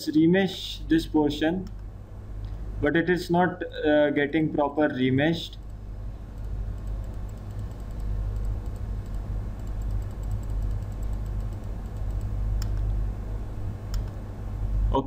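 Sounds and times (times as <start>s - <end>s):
steady low hum: 0.0s - 15.0s
keyboard and mouse clicks: 6.4s - 12.9s, 13.9s - 14.2s.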